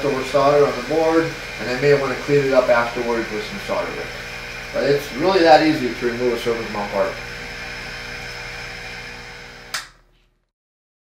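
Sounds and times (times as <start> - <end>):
hot air blower hiss and hum: 0.0 - 10.0
sharp click: 9.7 - 10.0.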